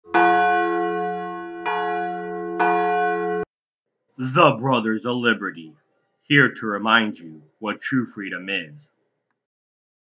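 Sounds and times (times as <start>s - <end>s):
bell ringing: 0.1s - 3.5s.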